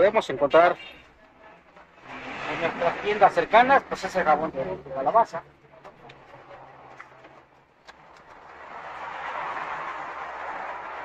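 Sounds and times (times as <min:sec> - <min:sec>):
vehicle passing: 0:01.9 - 0:05.4, 0:06.0 - 0:11.0.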